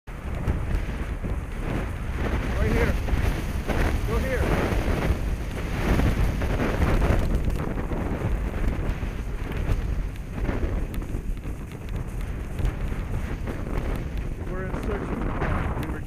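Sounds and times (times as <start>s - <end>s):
skis sliding over snow: 0.1s - 16.0s
wind buffeting microphone: 0.1s - 16.0s.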